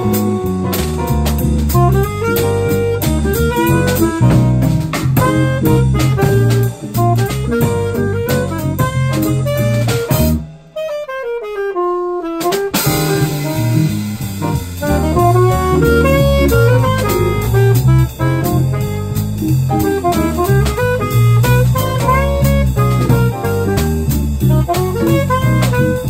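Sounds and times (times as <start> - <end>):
electric guitar: 0.0 - 10.4, 12.5 - 26.0
bass guitar: 0.0 - 10.8, 12.2 - 26.0
drum kit: 0.0 - 11.4, 12.2 - 26.0
alto saxophone: 0.0 - 26.0.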